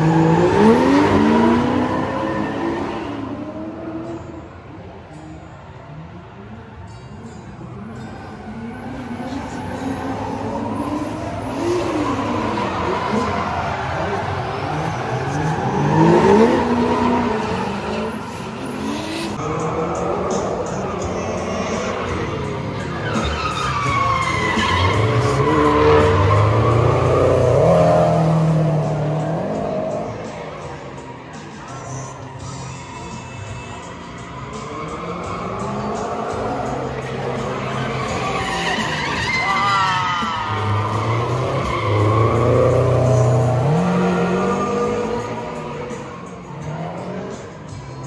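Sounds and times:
car engines revving: 0:00.0 - 0:48.0
tyres squealing: 0:21.0 - 0:30.0, 0:34.1 - 0:47.4.

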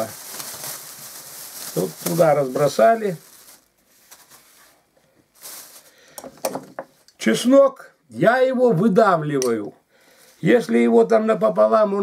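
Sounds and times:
plastic bag rustling: 0:00.0 - 0:07.0.

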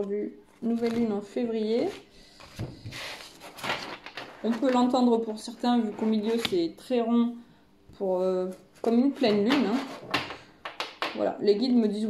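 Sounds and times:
card rustling and scraping: 0:01.9 - 0:05.0, 0:08.5 - 0:10.2.

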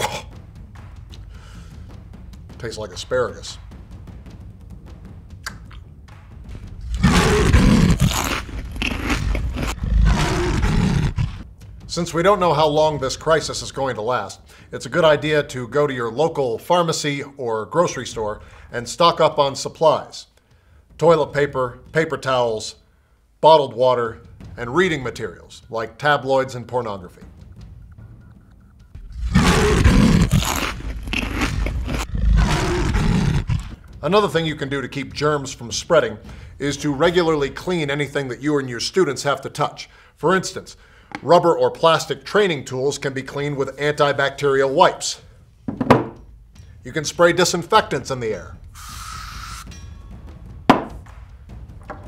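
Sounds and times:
loud rough throaty roar: 0:06.9 - 0:08.1, 0:09.2 - 0:11.4, 0:29.1 - 0:30.8, 0:31.4 - 0:33.8.

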